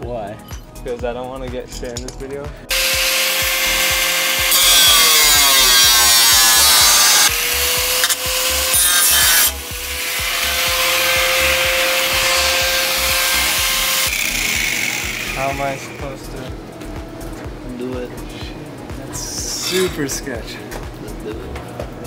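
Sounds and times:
angle grinder cutting sheet metal: 0:02.7 - 0:16.1, 0:19.5 - 0:20.0.

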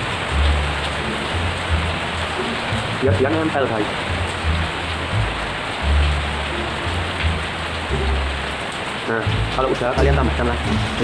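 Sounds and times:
low rumbling: 0:00.0 - 0:11.0
steady rain: 0:00.0 - 0:11.0.

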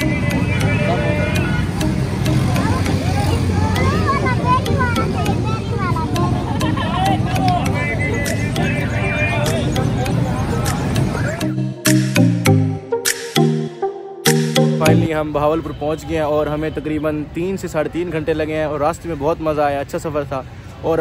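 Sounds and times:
people chattering: 0:00.0 - 0:11.7
passing traffic rumble: 0:00.0 - 0:12.8.

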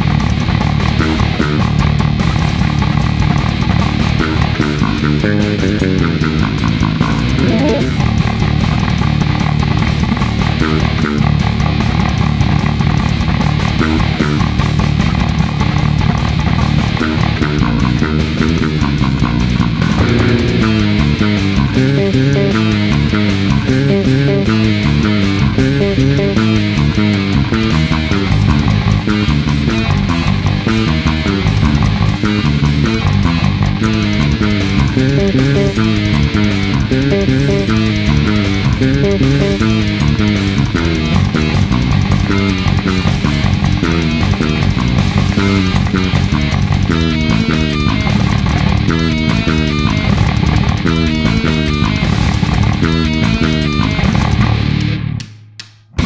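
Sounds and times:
heavy metal band: 0:00.0 - 0:55.2
fretless bass played fingerstyle: 0:00.0 - 0:55.3.

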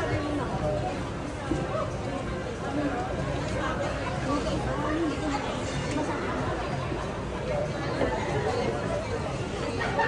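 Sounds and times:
indistinct chatter of many people: 0:00.0 - 0:10.0.

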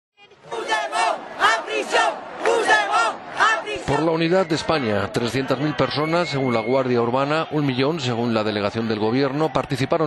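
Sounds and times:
crowd chanting slogan: 0:00.2 - 0:06.1.

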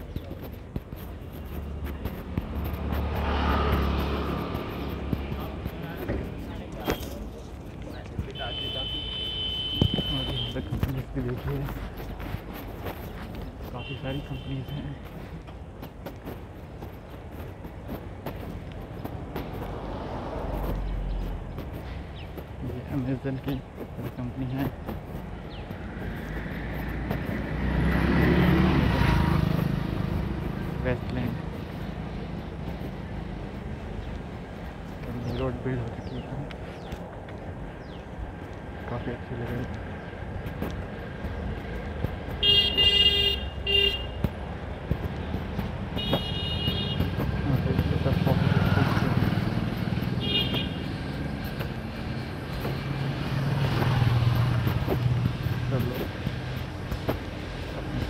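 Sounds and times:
engine rumbling: 0:00.0 - 0:58.0
street traffic: 0:00.0 - 0:58.0
vehicle passing by: 0:01.6 - 0:06.6, 0:25.8 - 0:34.0, 0:47.0 - 0:58.0
vehicle horns honking: 0:08.2 - 0:10.9, 0:13.8 - 0:15.0, 0:42.3 - 0:44.3, 0:45.9 - 0:49.1, 0:50.2 - 0:50.9.

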